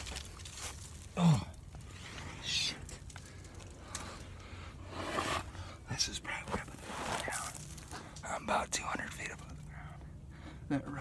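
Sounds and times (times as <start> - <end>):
man breathing heavily: 9.6 - 10.7.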